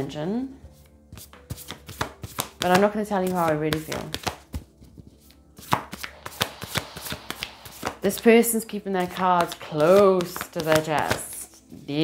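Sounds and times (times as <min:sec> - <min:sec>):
cards being shuffled: 0:01.2 - 0:08.0, 0:09.0 - 0:12.0.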